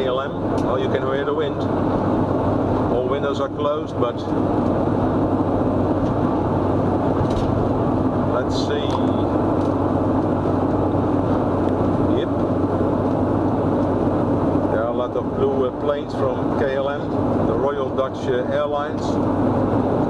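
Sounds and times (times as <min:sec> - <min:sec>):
low engine drone: 0:00.0 - 0:20.0
wind and road noise in car: 0:00.0 - 0:20.0.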